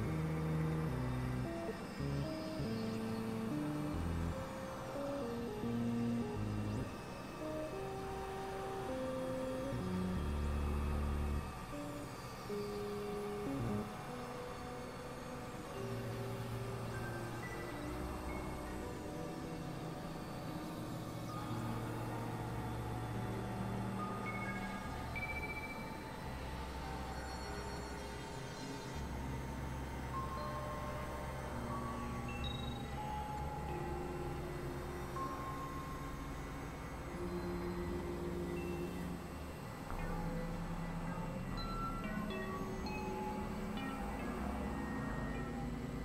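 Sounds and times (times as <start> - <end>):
experimental synthesizer music: 28.9 - 46.0.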